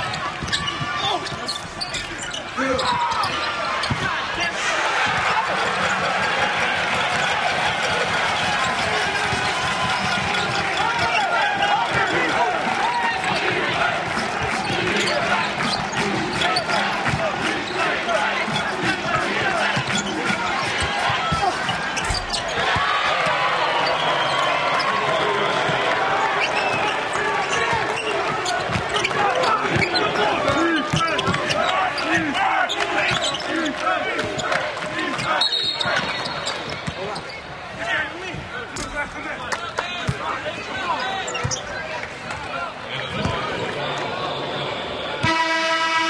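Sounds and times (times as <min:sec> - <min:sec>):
crowd noise and voices: 0:00.0 - 0:46.0.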